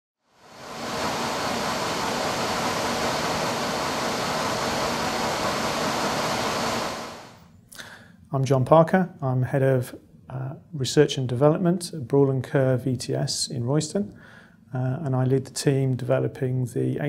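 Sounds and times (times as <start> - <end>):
shaker system rushing noise: 0.4 - 7.4.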